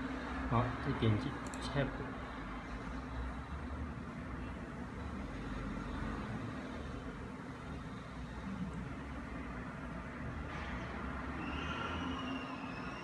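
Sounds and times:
low hum of room noise: 0.0s - 13.0s.

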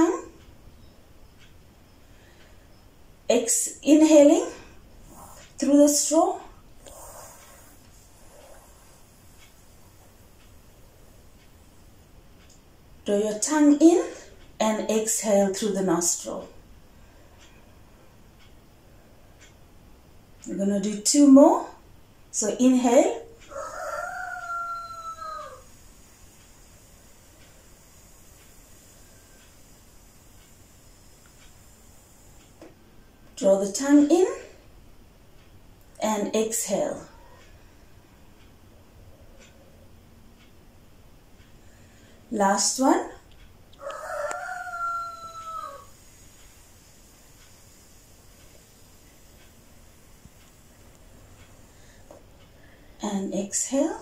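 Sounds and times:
rooster crowing: 23.5s - 25.8s, 43.8s - 46.1s.

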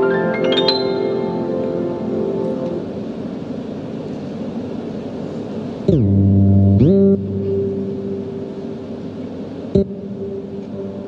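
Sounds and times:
electronic keyboard tone swooping: 0.0s - 2.7s
piano notes: 0.0s - 3.2s.

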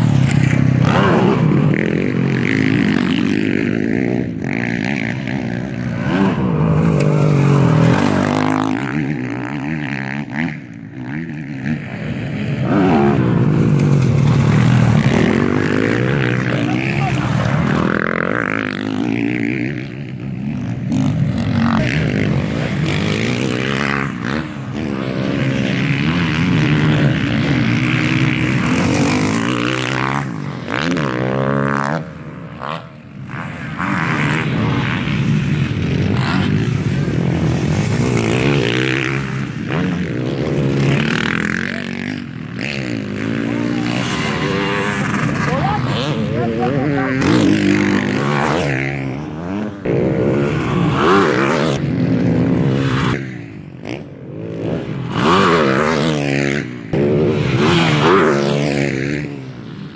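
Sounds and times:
motocross bikes revving past: 0.0s - 59.9s.

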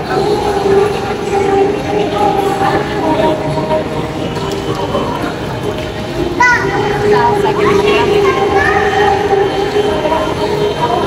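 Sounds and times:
hubbub of busy hall: 0.0s - 11.0s.

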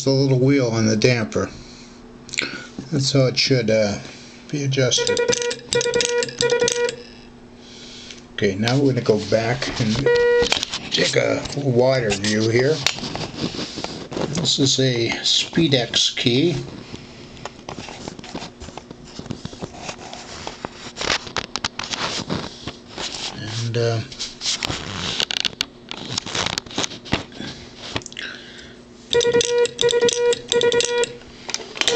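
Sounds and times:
buzzy morse dots: 4.8s - 7.0s, 29.1s - 31.2s.

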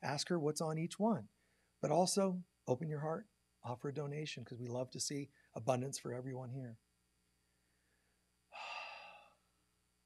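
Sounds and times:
man's deep breath: 7.4s - 9.4s.

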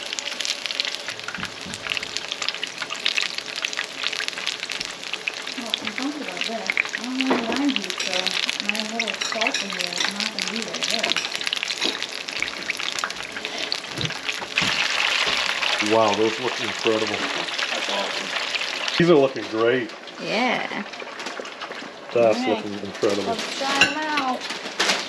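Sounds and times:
food deep-frying in hot oil: 0.0s - 25.0s.

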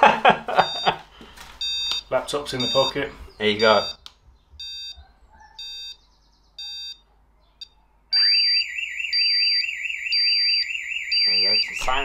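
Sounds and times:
alarm countdown beeping: 0.6s - 1.0s, 1.6s - 4.0s, 4.6s - 5.0s, 5.6s - 6.0s, 6.6s - 7.0s, 8.1s - 12.0s
pulsing high beep: 2.6s - 3.0s, 4.6s - 5.0s, 6.6s - 7.0s, 8.2s - 12.0s
warbling alarm siren: 6.6s - 7.0s, 7.6s - 12.0s.

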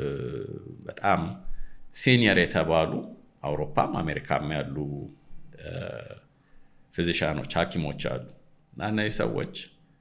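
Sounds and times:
man's throaty vocal sound: 0.0s - 0.9s, 5.5s - 6.3s
man speaking: 0.0s - 6.3s, 7.0s - 9.8s.

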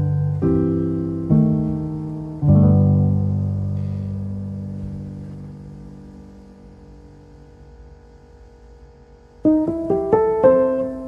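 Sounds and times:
held low piano chord: 0.0s - 8.5s, 9.1s - 11.0s.

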